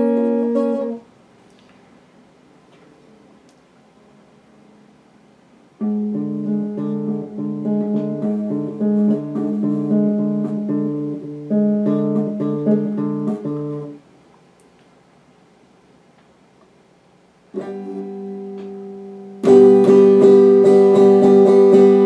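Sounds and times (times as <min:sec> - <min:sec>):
electric guitar melody: 0:00.0 - 0:01.1, 0:05.8 - 0:14.0, 0:17.5 - 0:22.0.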